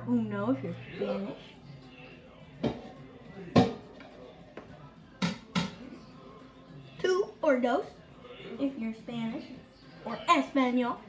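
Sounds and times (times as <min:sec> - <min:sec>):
faint music: 0:00.0 - 0:11.0.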